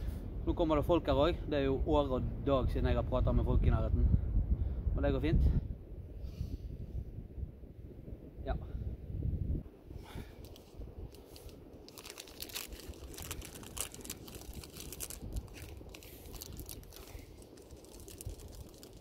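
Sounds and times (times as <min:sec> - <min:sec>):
low rumble: 0:02.2 - 0:19.0
plastic wrapper crinkling and tearing: 0:10.4 - 0:19.0.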